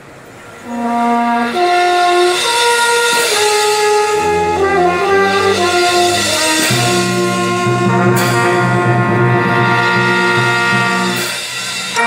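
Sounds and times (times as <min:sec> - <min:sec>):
brass and percussion band: 0:00.6 - 0:12.0.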